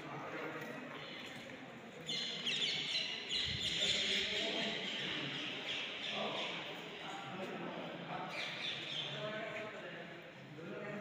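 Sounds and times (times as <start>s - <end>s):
faint voices of people: 0.0s - 11.0s.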